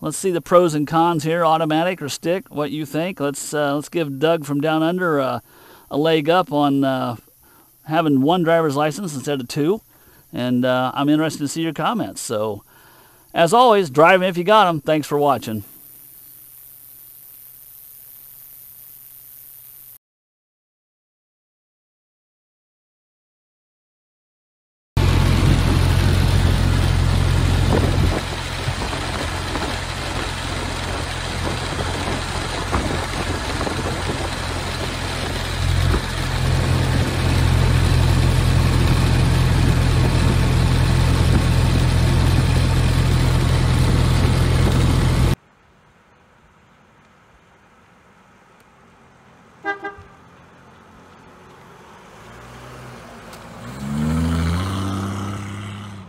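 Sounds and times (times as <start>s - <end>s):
car engine running: 25.0s - 45.4s
wind rush: 25.0s - 45.4s
vehicle passing: 49.0s - 56.0s.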